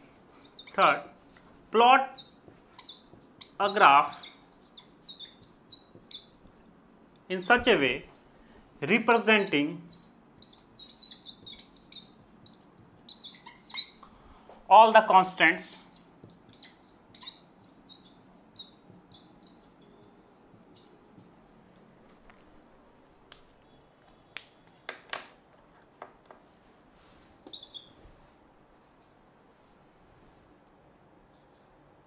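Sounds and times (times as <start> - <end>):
marker squeaking on whiteboard: 0.0 - 6.7, 8.9 - 14.1, 14.9 - 21.6, 27.4 - 28.0
faint room noise: 0.0 - 32.0.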